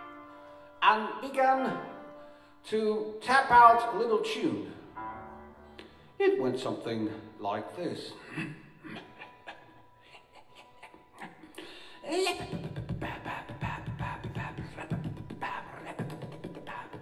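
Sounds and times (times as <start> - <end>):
rhythmic tapping tune: 11.4 - 17.0.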